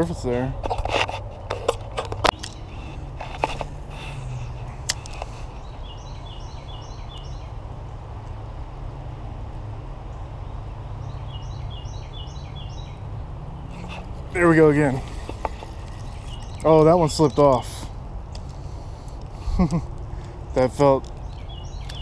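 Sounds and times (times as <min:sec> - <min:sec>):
steady low rumble: 0:00.0 - 0:11.2
songbird singing: 0:00.0 - 0:22.0.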